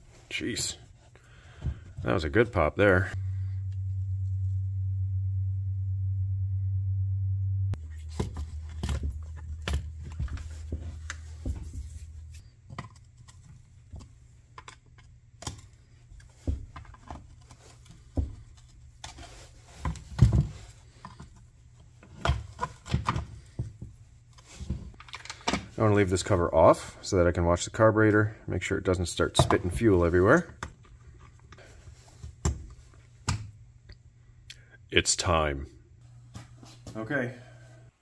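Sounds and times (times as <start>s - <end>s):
low steady hum: 0.0s - 38.0s.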